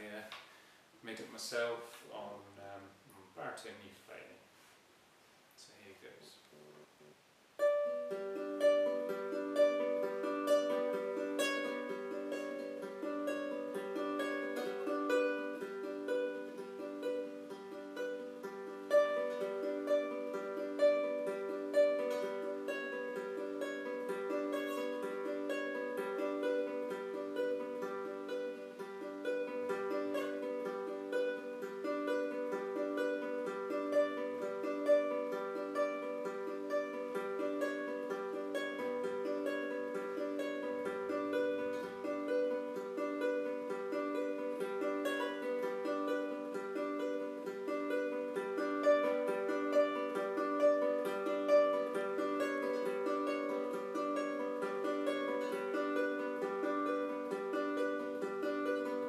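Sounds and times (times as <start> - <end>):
fingerpicked ukulele: 7.5 - 59.0.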